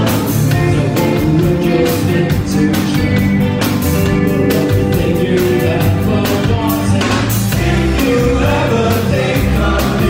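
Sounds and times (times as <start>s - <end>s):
live rock band playing: 0.0s - 10.0s
steady drum beat: 0.0s - 10.0s.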